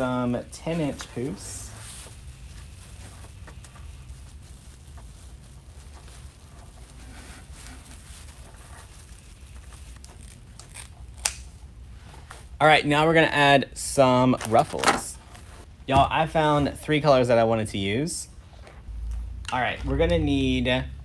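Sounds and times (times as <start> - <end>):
plastic mesh rustling and crinkling: 0.0 - 11.1.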